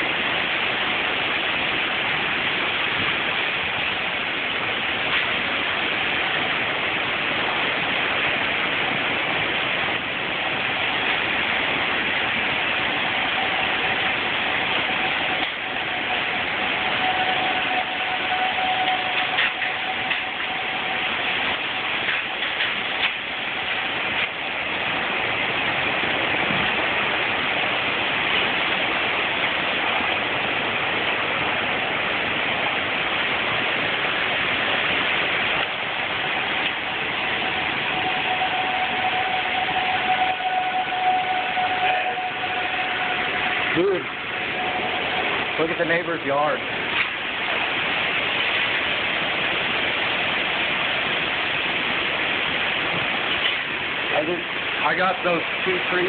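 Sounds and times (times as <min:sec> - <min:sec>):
heavy rain: 0:00.0 - 0:56.0
strong wind roaring: 0:00.0 - 0:56.0
faint steady tone: 0:10.4 - 0:24.9, 0:35.6 - 0:46.4.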